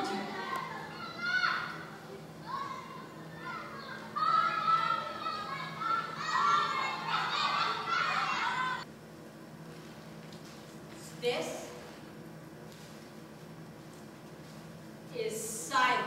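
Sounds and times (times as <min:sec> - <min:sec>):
children shouting and calling: 0:00.0 - 0:08.9.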